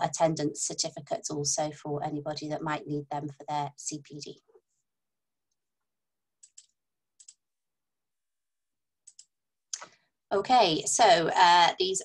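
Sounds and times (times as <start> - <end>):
computer mouse clicks: 6.4 - 7.4, 9.0 - 9.9.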